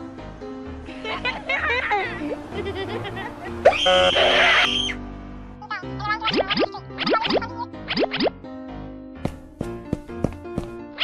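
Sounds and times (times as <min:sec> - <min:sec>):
children's cartoon music: 0:00.7 - 0:11.0
shrill screechy sound effect: 0:03.7 - 0:05.0.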